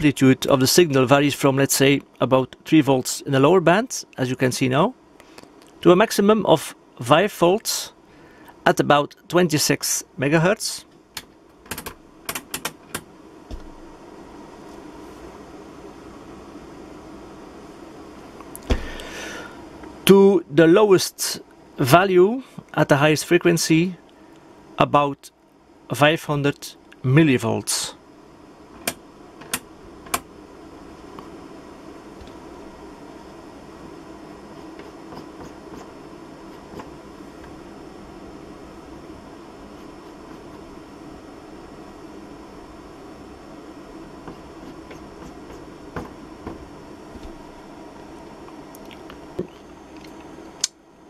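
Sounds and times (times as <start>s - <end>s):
faint steady hum: 0.0s - 51.0s
rotary switch clicking: 11.2s - 13.0s.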